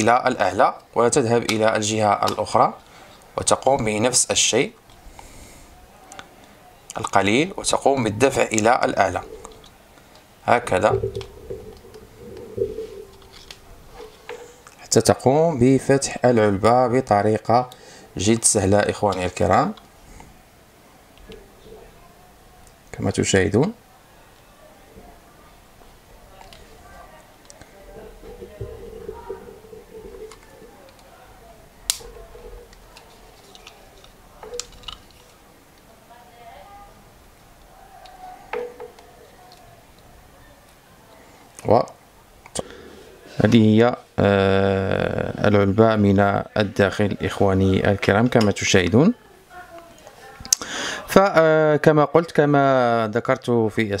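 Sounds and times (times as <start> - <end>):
faint steady tone: 8.0 - 14.9, 23.8 - 35.8.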